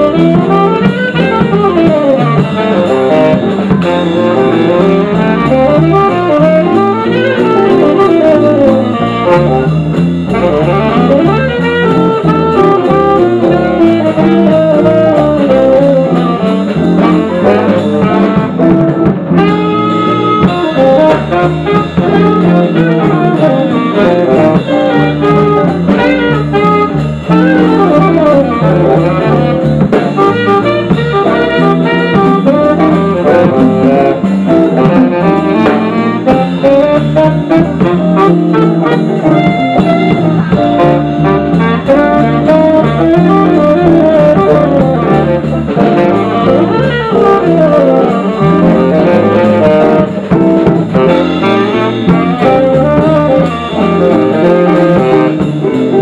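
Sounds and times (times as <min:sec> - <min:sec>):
bass guitar: 0:00.0 - 0:56.0
drum kit: 0:00.0 - 0:56.0
electric guitars: 0:00.0 - 0:56.0
saxophone playing: 0:00.0 - 0:56.0.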